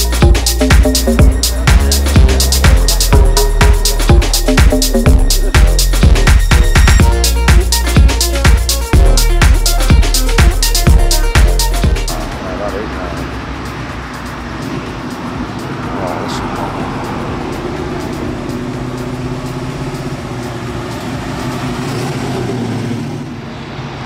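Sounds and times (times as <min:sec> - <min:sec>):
cars driving: 0:00.0 - 0:24.0
muscle car engine accelerating: 0:00.0 - 0:24.0.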